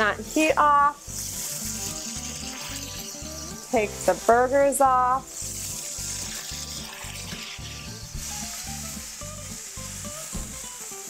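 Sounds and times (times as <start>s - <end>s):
background music with low beat: 0.0s - 11.0s
fat sizzling in a pan: 0.0s - 11.0s.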